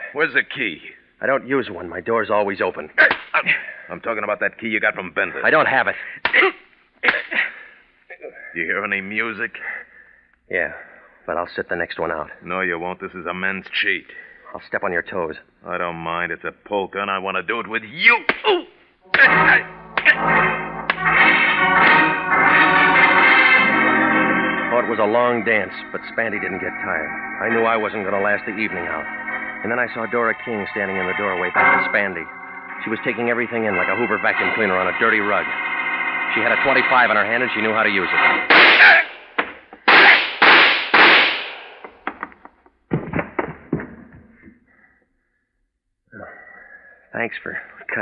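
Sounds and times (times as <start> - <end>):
organ chords: 19.0 - 39.4.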